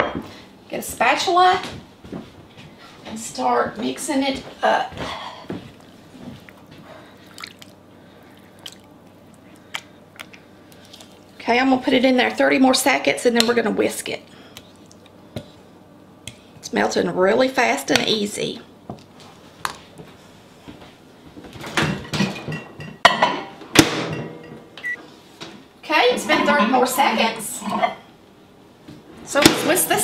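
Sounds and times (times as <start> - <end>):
spatula stirring wet mixture: 5.6 - 11.8.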